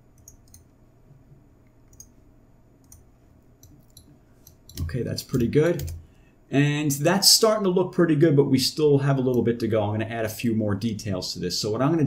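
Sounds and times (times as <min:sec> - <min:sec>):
steady low hum: 0:00.0 - 0:12.0
computer mouse clicks: 0:00.2 - 0:00.7, 0:01.8 - 0:02.2, 0:02.8 - 0:06.0.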